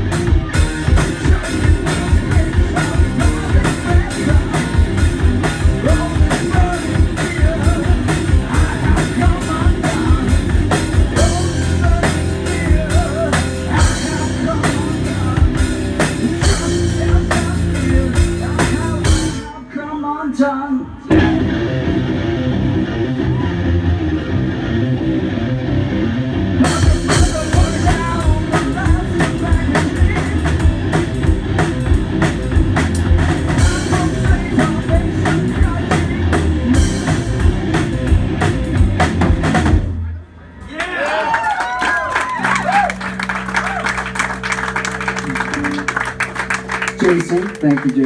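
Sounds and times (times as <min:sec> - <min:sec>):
drum kit: 0:00.0 - 0:19.6, 0:26.5 - 0:40.1, 0:42.2 - 0:48.0
distorted electric guitar: 0:00.0 - 0:19.7, 0:21.0 - 0:40.2, 0:42.2 - 0:48.0.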